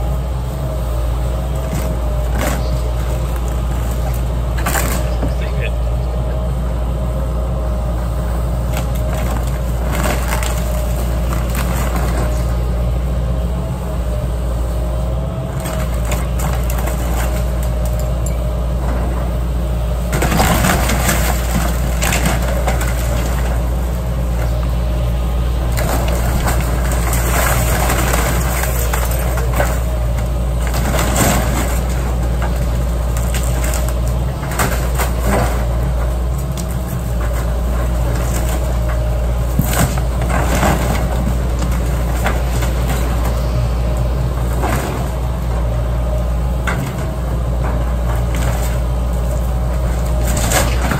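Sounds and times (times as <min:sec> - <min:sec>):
excavator diesel engine running: 0:00.0 - 0:50.9
timber crunching and cracking: 0:08.4 - 0:12.8, 0:15.1 - 0:18.2, 0:19.9 - 0:50.9.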